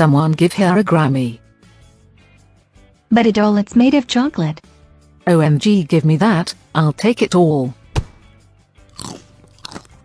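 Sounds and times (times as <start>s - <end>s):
crunchy chocolate bites: 8.9s - 10.0s.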